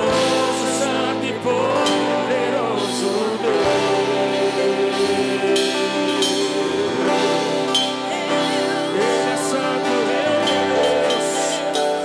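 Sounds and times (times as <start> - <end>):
church band playing gospel: 0.0 - 12.0.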